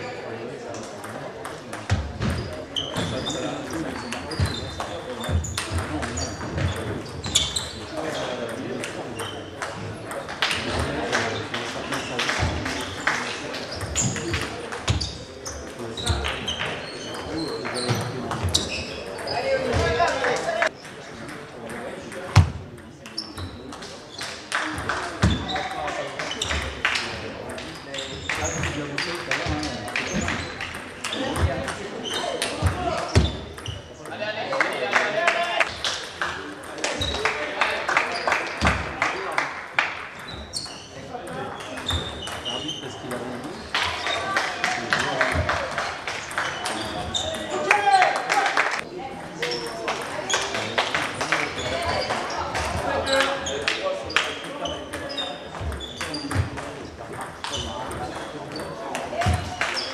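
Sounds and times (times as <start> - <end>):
people talking in background: 0.0 - 59.9.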